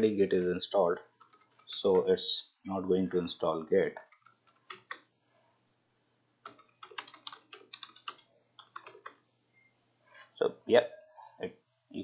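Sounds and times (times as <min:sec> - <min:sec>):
computer keyboard typing: 0:01.2 - 0:02.1, 0:04.0 - 0:05.1, 0:06.4 - 0:09.2.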